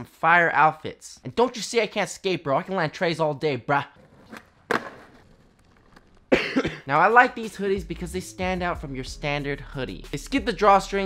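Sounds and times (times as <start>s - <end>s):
man coughing: 6.3s - 7.0s.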